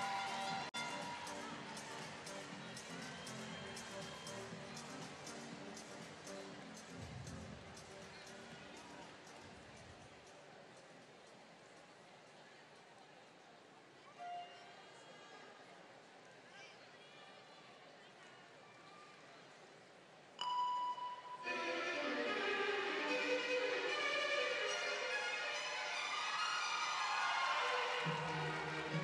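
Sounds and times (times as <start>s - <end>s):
orchestral music with violins: 21.4s - 29.0s.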